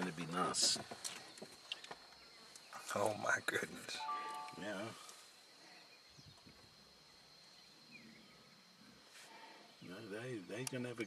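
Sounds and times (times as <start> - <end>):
thin steady high tone: 3.9 - 5.6.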